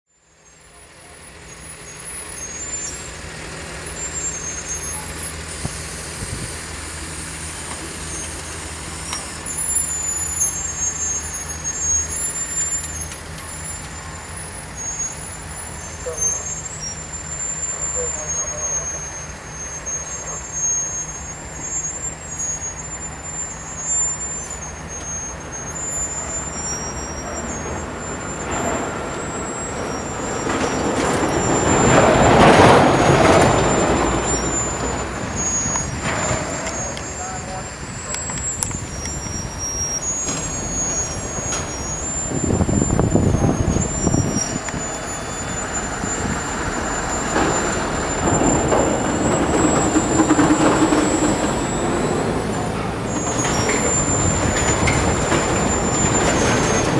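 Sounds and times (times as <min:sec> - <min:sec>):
diesel engine humming: 0:00.1 - 0:56.9.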